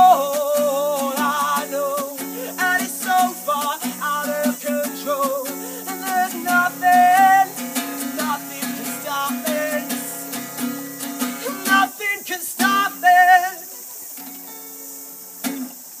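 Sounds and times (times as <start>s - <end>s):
acoustic guitar strummed: 0.0s - 16.0s.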